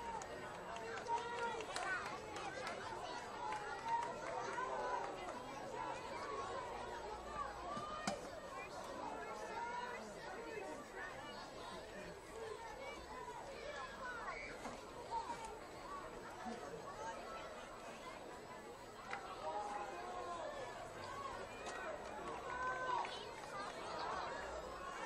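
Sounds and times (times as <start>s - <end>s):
crowd chatter: 0.0s - 25.0s.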